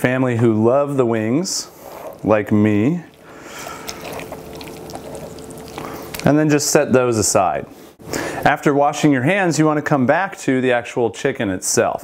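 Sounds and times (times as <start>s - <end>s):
chicken meat tearing and squishing: 3.1s - 6.5s.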